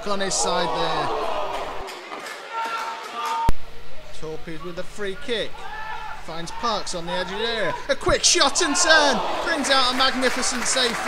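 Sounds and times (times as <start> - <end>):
faint players shouting: 0.0 - 3.5.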